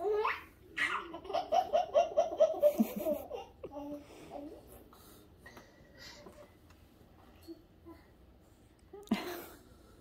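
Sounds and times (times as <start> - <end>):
young child laughing: 0.8 - 3.8.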